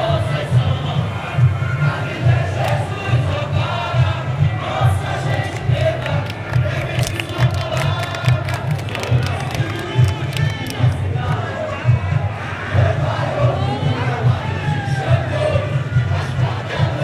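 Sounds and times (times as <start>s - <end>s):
crowd singing and shouting: 0.0s - 17.0s
deep pulsing bass drums: 0.0s - 17.0s
samba drum section playing: 0.0s - 17.0s.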